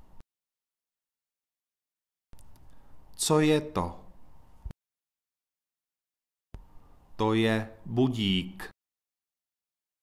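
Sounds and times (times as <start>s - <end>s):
faint room hiss: 2.4s - 4.8s, 6.6s - 8.7s.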